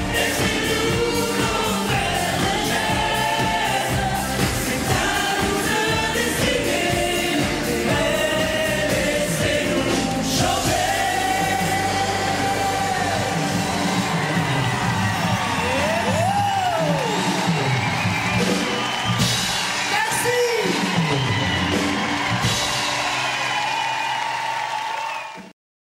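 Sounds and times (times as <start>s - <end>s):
live pop music with singers: 0.0s - 23.4s
audience whooping and cheering: 10.8s - 25.5s.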